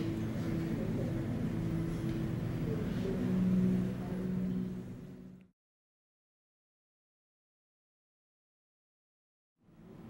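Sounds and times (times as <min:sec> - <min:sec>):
faint room noise: 0:00.0 - 0:05.5, 0:09.6 - 0:10.0
steady low hum: 0:00.0 - 0:05.5, 0:09.6 - 0:10.0.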